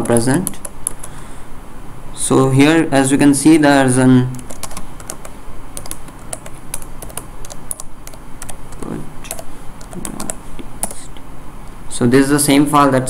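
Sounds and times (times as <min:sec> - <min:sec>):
typing on computer keyboard: 0:00.0 - 0:01.1, 0:04.3 - 0:11.1.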